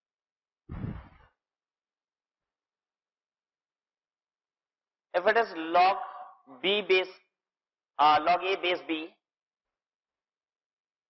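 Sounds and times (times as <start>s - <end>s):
man exhaling: 0.7s - 1.3s.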